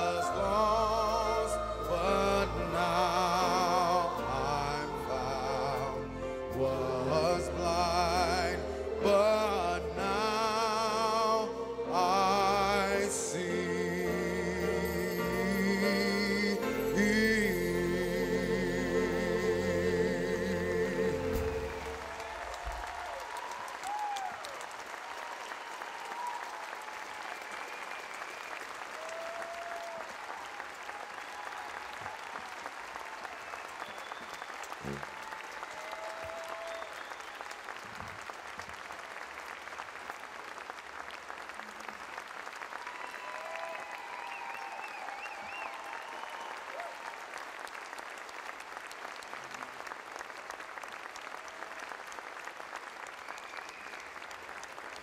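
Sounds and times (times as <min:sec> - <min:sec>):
audience applauding: 0:19.1 - 0:55.0
whoops: 0:21.9 - 0:37.6, 0:42.7 - 0:47.4.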